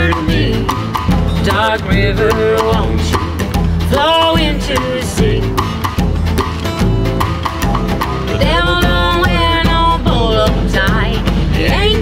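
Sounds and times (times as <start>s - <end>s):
acoustic guitar: 0.0s - 12.0s
drums keeping a steady beat: 0.0s - 12.0s
upright bass: 0.0s - 12.0s
woman singing: 8.3s - 12.0s.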